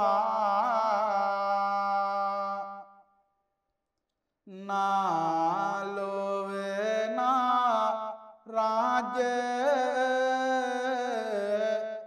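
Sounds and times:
monk chanting: 0.0 - 2.9, 4.5 - 12.0.

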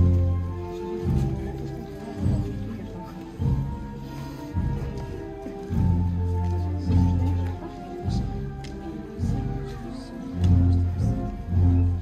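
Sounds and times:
slow processional band music: 0.0 - 12.0
deep drum beat: 3.4 - 9.8.

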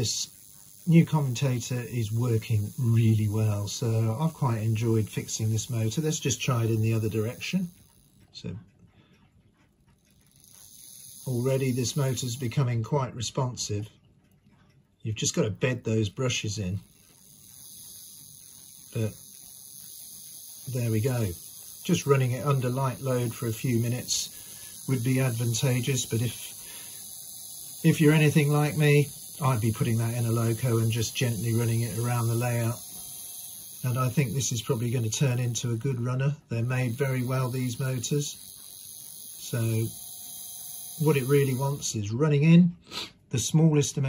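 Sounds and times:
small electric motor whirring: 0.0 - 8.4, 9.3 - 12.9, 15.8 - 42.1.

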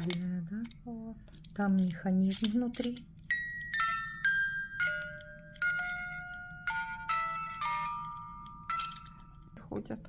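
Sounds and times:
music box playing slow tune: 3.3 - 9.6.

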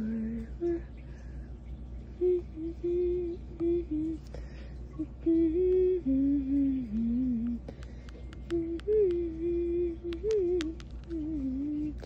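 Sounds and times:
person humming: 0.0 - 0.9, 2.2 - 4.3, 5.0 - 7.7, 8.4 - 12.0.

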